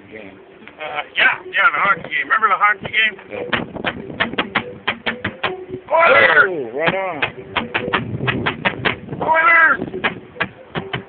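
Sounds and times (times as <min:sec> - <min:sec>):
plastic pail drums: 0:06.8 - 0:09.1, 0:10.0 - 0:11.0.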